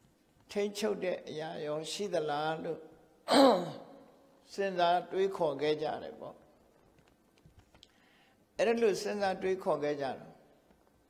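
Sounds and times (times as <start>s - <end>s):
man speaking: 0.5s - 6.4s, 8.6s - 10.4s
breathy vocal exclamation: 3.3s - 3.8s.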